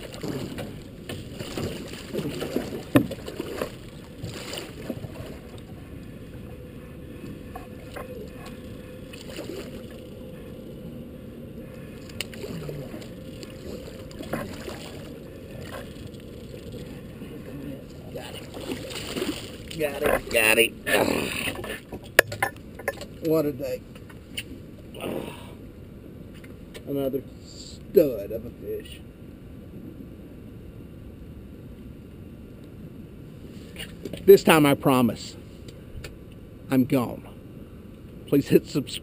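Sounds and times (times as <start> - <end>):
fish thrashing and splashing: 0.0 - 5.7, 7.6 - 10.1, 12.0 - 17.3, 17.9 - 20.3
low rush of water and wind: 0.0 - 39.0.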